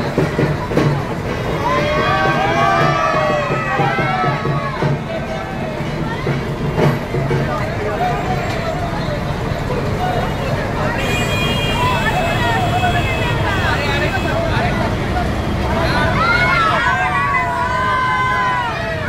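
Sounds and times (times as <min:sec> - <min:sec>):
vehicle engine rumble: 0:00.0 - 0:19.0
crowd shouting: 0:01.2 - 0:19.0.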